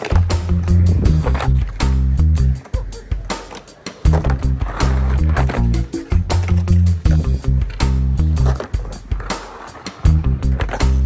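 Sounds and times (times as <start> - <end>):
guitar and bass music: 0.0 - 3.4, 4.0 - 9.4, 10.0 - 11.0
skateboard rolling and scraping: 0.0 - 11.0.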